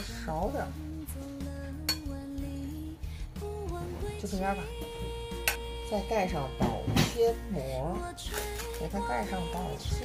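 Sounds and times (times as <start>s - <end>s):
background music with held notes: 0.0s - 10.0s
metal spoon clinking ceramic bowl: 1.9s - 2.2s.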